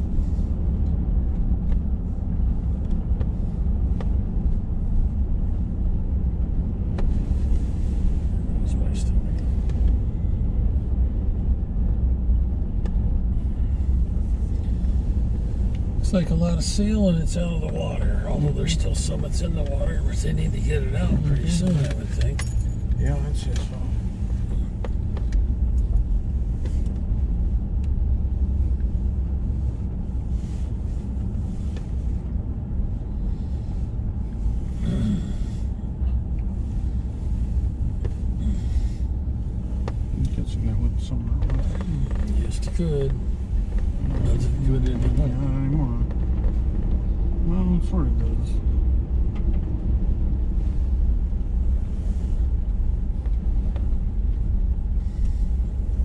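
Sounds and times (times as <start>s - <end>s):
vehicle rumbling on gravel road: 0.0s - 56.0s.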